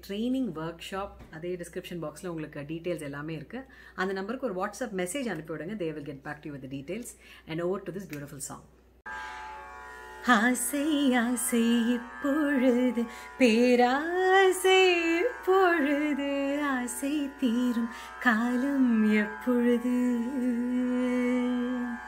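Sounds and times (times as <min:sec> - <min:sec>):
steady drone accompaniment: 0:09.1 - 0:22.0
woman singing: 0:10.2 - 0:22.0.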